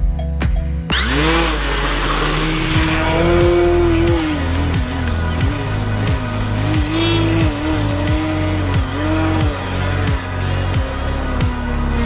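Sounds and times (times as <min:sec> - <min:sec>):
background music with steady beat: 0:00.0 - 0:12.0
model plane electric motor whine: 0:00.9 - 0:12.0.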